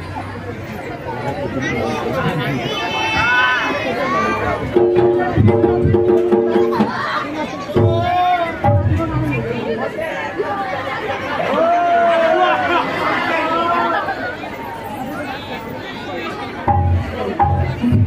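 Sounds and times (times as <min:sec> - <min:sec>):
people chattering: 0:00.0 - 0:18.0.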